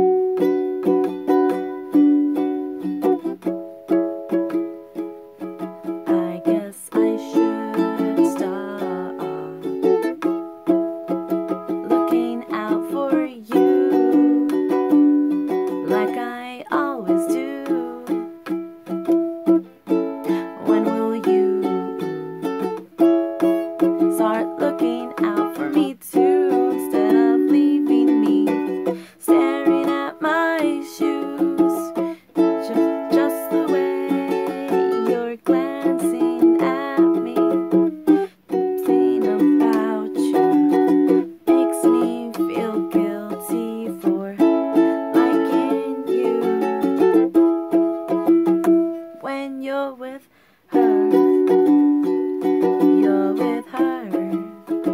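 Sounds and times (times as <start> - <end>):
ukulele strumming: 0.0 - 54.9.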